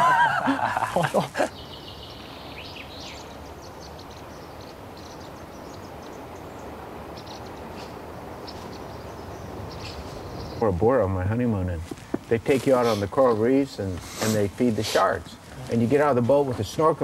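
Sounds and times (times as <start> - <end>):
steady outdoor hiss: 0.0 - 17.0
small birds chirping: 0.7 - 17.0.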